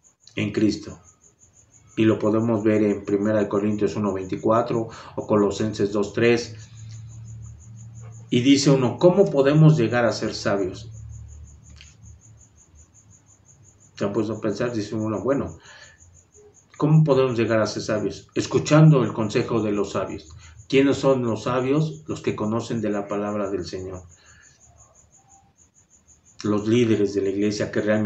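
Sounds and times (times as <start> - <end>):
cricket chirping: 0.0 - 28.0
low steady hum: 0.0 - 28.0.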